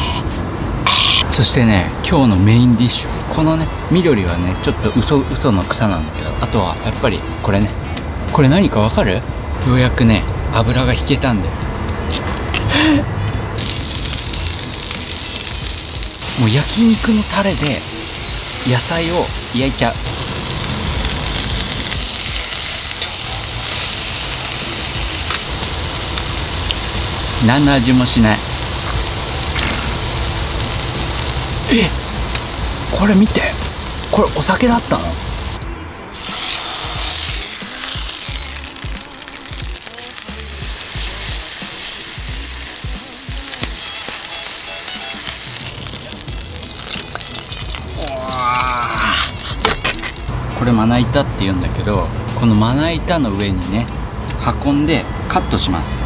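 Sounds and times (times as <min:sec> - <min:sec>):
vegetables sizzling in a frying pan: 0:13.6 - 0:50.3.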